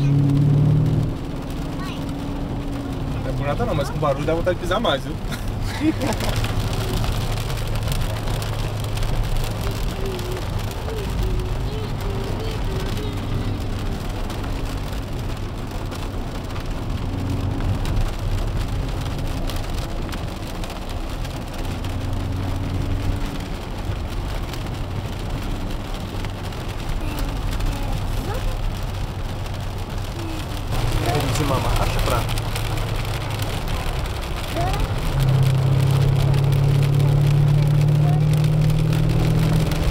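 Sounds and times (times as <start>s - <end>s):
car engine while driving: 0.0s - 39.9s
rain and tyres on wet road: 0.0s - 39.9s.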